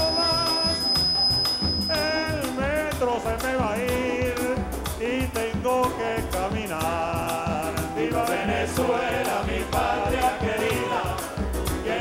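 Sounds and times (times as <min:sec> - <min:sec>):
steady high-pitched tone: 0:00.0 - 0:02.2
live band music: 0:00.0 - 0:12.0.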